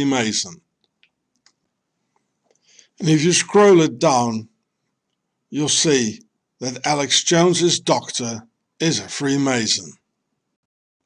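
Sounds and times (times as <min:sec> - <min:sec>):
faint breath: 0:02.5 - 0:03.0.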